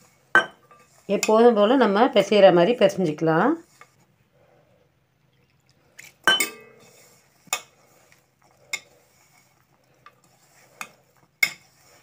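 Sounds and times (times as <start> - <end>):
hand mixing crumbly dough: 0.0 - 4.3, 5.2 - 12.0
metal bowl clinking: 0.4 - 1.6, 6.2 - 7.7.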